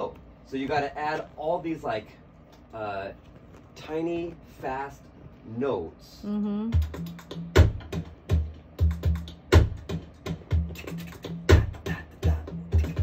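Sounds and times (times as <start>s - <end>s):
slow drum groove: 6.6s - 13.0s.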